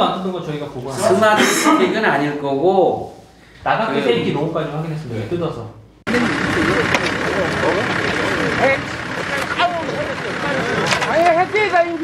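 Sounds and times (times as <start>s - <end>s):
men talking and calling: 0.0s - 12.0s
truck engine running: 6.1s - 12.0s.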